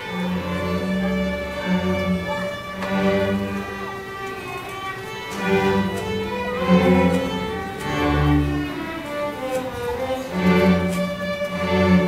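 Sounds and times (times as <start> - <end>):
string orchestra playing: 0.0 - 12.0.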